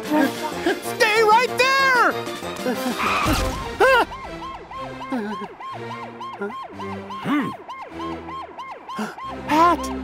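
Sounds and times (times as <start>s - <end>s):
background music: 0.0s - 10.0s
police siren wailing: 3.0s - 10.0s.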